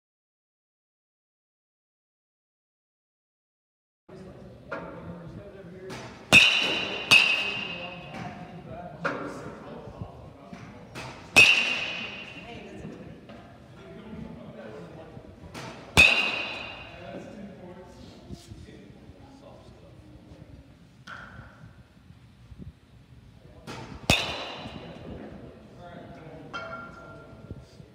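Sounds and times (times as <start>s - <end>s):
murmur of voices: 4.1s - 21.0s
bat hitting ball with ping: 6.3s - 8.2s, 11.0s - 12.6s, 16.0s - 17.1s, 24.1s - 25.1s.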